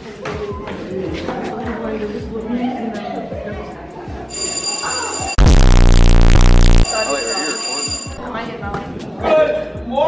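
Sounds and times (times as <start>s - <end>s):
high steady ringing tones: 4.3s - 8.2s
loud distorted buzzing blast: 5.4s - 7.1s.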